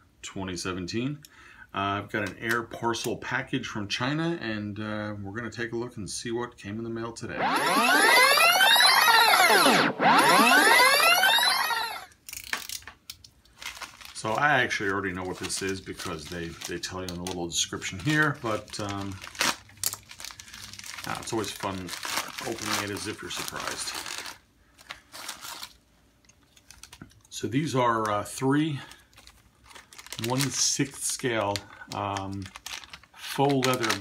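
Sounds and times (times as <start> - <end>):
synthesizer sweeps: 7.4 - 12.1
plastic mailer bag crinkling: 13.5 - 25.8, 26.4 - 34.0.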